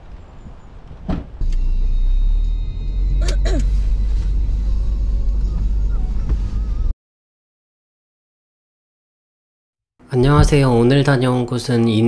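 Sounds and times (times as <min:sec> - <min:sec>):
car engine low rumble: 0:00.1 - 0:06.9
thump: 0:01.1 - 0:01.3.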